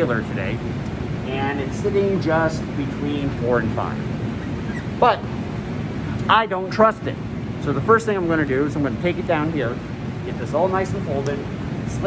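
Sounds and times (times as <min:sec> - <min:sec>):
fan whoosh with low hum: 0:00.0 - 0:12.0.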